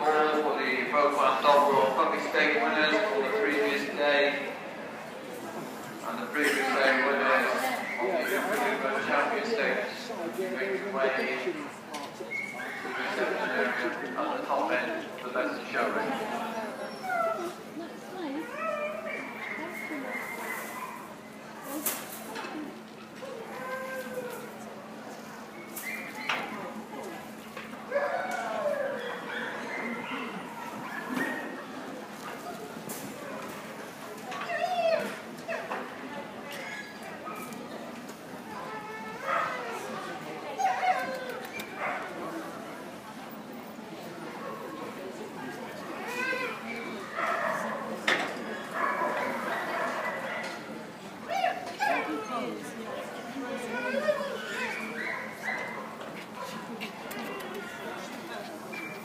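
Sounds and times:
people chattering: 0.0s - 59.0s
dogs barking and yelping: 18.5s - 21.1s, 27.9s - 31.6s, 48.6s - 50.6s, 51.3s - 52.5s, 53.8s - 56.5s.

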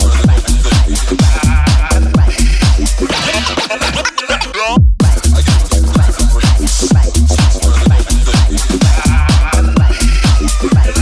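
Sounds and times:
kick drum: 0.0s - 3.2s, 4.8s - 11.0s
sustained bass line: 0.0s - 11.0s.

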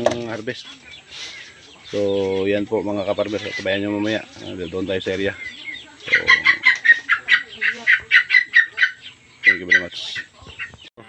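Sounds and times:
chicken clucking: 0.0s - 11.0s.

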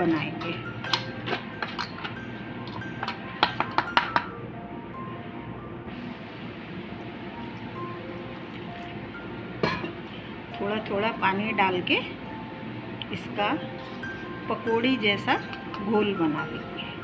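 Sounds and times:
quiet background music: 0.0s - 17.0s
spoon clinking against steel bowl: 0.1s - 4.3s, 15.1s - 16.0s
water pouring: 13.8s - 14.3s.

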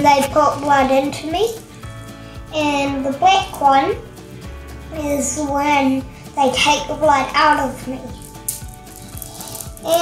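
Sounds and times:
faint background music: 0.0s - 10.0s
beads clicking and rattling: 8.2s - 10.0s.

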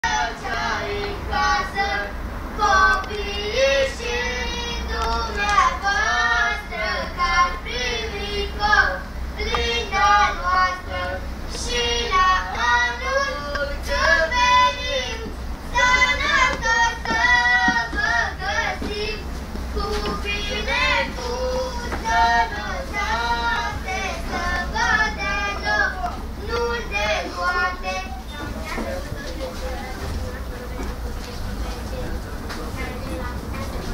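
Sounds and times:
person singing a carol: 0.0s - 30.4s
vehicle rumble: 0.0s - 33.9s.

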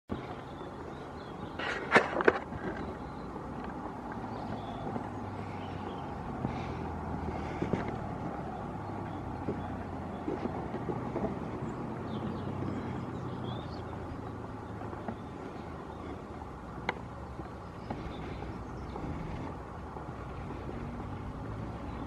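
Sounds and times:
vehicle engine hum: 0.1s - 22.0s.

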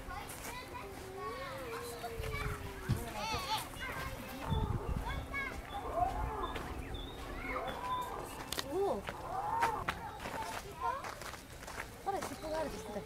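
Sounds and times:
children shouting and calling: 0.0s - 13.0s.

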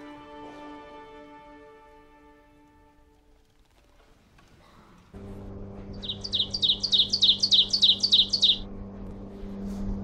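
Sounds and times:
steady low hum: 4.9s - 10.0s
songbird singing high falling notes: 5.9s - 8.7s.

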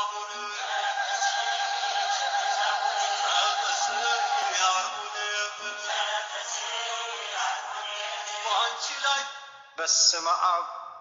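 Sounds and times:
music with singing voice: 0.0s - 9.5s.

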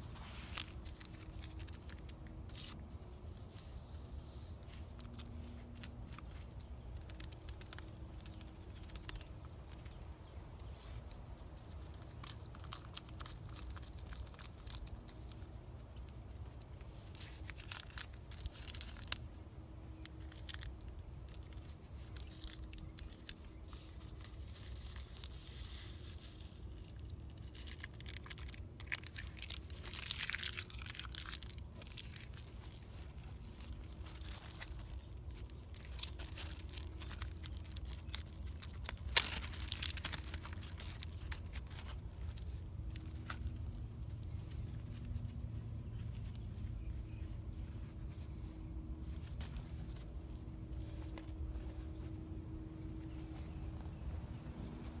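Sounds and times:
plastic packets crinkling and tearing: 0.0s - 53.5s.

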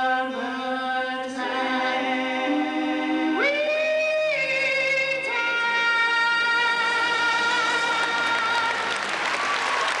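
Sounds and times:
audience applause: 6.8s - 10.0s.

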